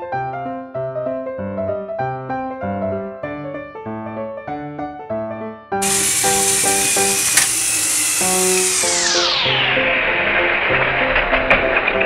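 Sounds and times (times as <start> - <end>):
sharp click: 5.8 - 9.2
toy train motors whirring: 5.8 - 9.6.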